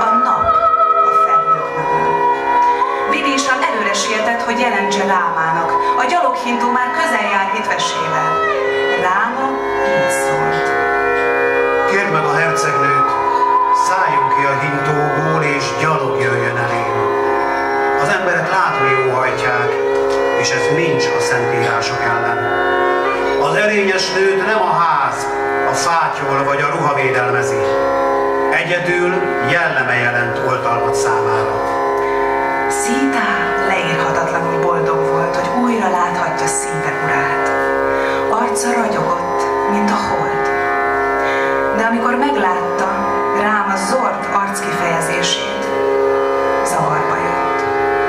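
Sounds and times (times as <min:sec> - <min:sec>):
held drone: 0:00.0 - 0:48.0
indian-style music: 0:00.0 - 0:48.0
violin: 0:00.0 - 0:48.0.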